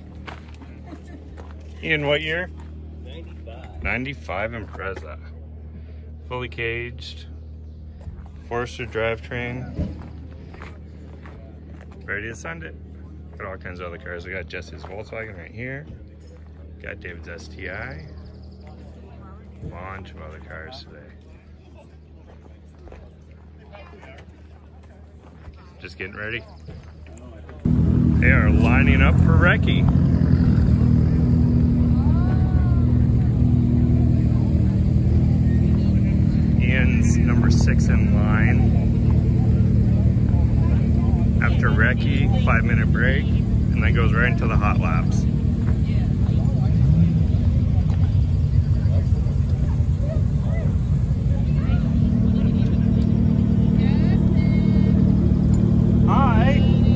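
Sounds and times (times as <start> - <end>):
footsteps on gravel: 0.0 - 3.8, 9.8 - 12.1
low engine hum: 0.0 - 56.9.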